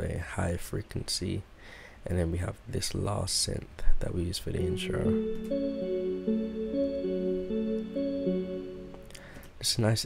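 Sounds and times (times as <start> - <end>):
synth bell melody: 4.6 - 9.2.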